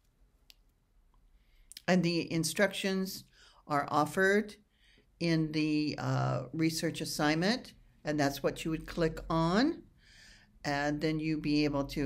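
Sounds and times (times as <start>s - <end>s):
woman speaking: 5.2s - 9.8s, 10.7s - 12.0s.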